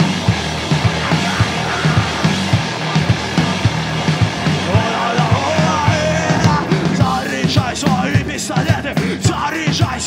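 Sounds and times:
drum kit beat: 0:00.0 - 0:10.0
punk rock band playing: 0:00.0 - 0:10.0.

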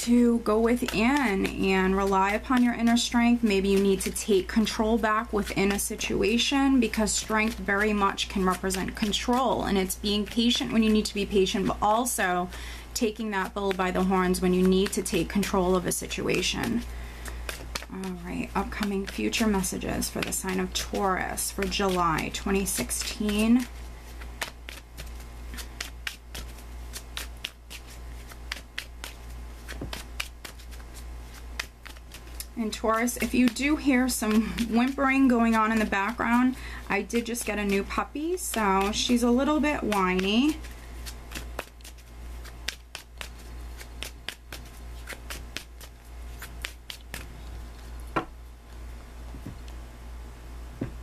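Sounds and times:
low steady hum: 0:00.0 - 0:51.0
cards being shuffled: 0:00.4 - 0:12.4, 0:13.0 - 0:48.8.

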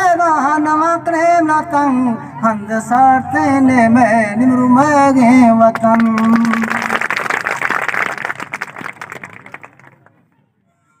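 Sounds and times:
audience applauding: 0:05.8 - 0:10.2.

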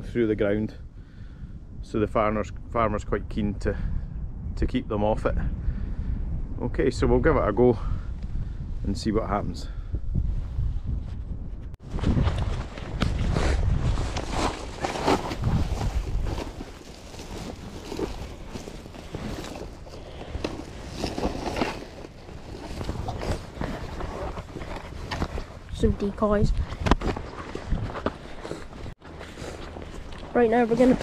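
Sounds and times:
wind buffeting microphone: 0:00.0 - 0:29.0
plastic sack rustling: 0:13.8 - 0:25.4.

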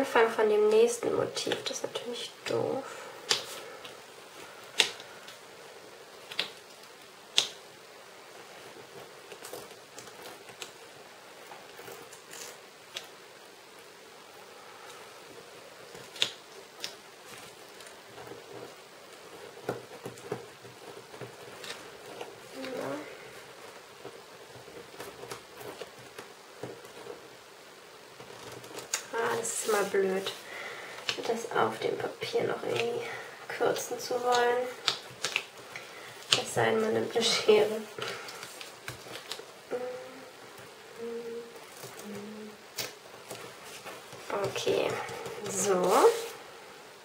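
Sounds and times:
stickers rustling on paper: 0:00.4 - 0:46.5.

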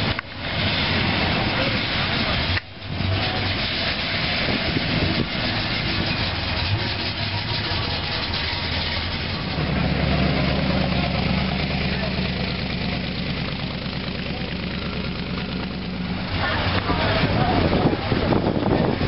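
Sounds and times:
hot rod engine rumble: 0:00.0 - 0:19.0.

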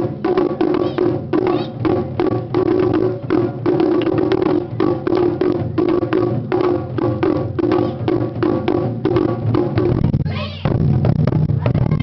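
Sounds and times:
heavy low barrel drum strokes: 0:00.0 - 0:12.0
taiko drumming: 0:00.0 - 0:12.0
high shout: 0:10.2 - 0:10.7.

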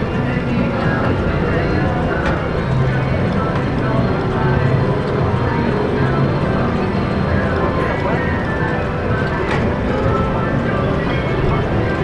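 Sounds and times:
background chatter: 0:00.0 - 0:12.0.

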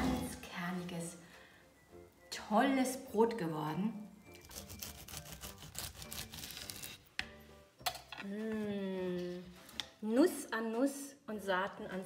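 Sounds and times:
bread knife sawing through crust: 0:04.4 - 0:07.0.

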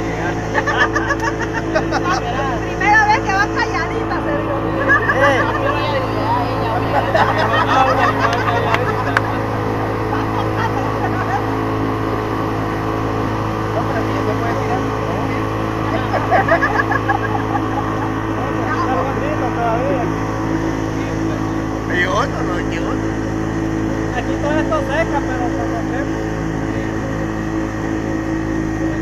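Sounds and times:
outboard motor running: 0:00.0 - 0:29.0.

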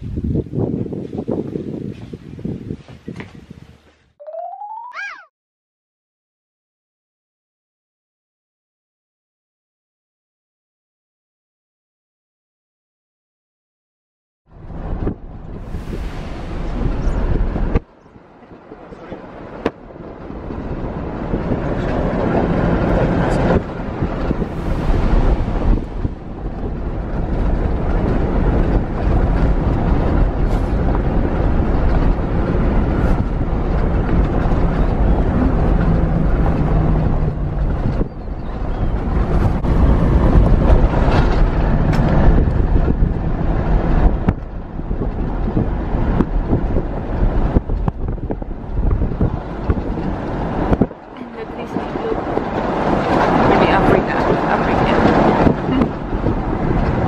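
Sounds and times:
wind rushing over microphone: 0:00.0 - 0:04.1, 0:14.5 - 0:57.0
vehicle engine and road noise: 0:14.5 - 0:57.0.

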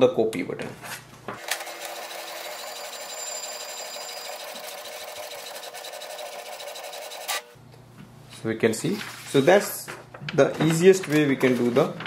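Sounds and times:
printer whirring and rattling: 0:01.4 - 0:07.4.

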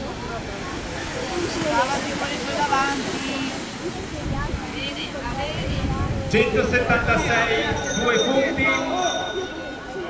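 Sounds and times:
indistinct voices: 0:00.0 - 0:10.0.

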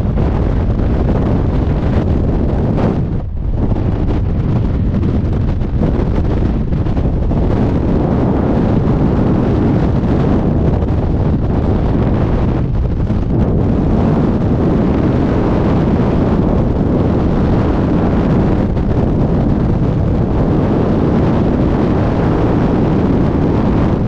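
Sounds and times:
wind roaring over microphone: 0:00.0 - 0:24.0.

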